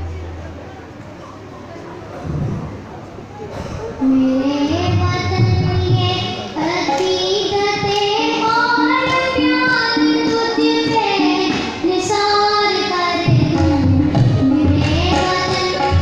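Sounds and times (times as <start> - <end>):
boy singing into microphone: 3.9 - 16.0.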